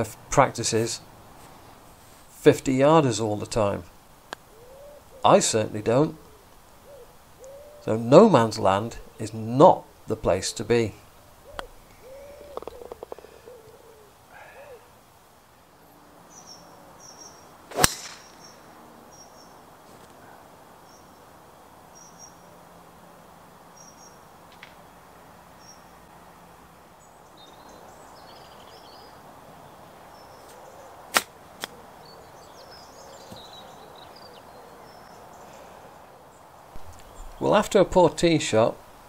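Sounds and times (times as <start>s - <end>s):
small birds chirping: 4.3s - 15.0s, 15.8s - 22.6s, 23.6s - 24.3s, 25.6s - 26.1s, 26.9s - 38.9s
golf club striking ball: 17.7s - 18.4s.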